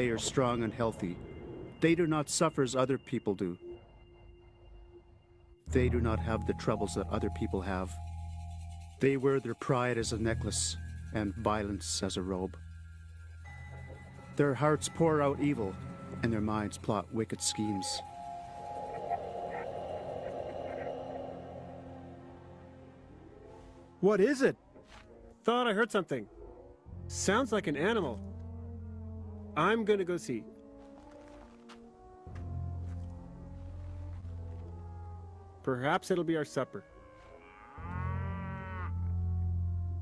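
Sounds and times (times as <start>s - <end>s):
rough animal-like call: 18.1s - 22.7s.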